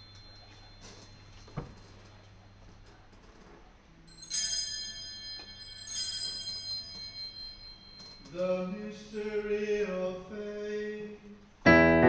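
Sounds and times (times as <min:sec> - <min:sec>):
small bell ringing: 0:00.0 - 0:02.6, 0:04.0 - 0:09.8.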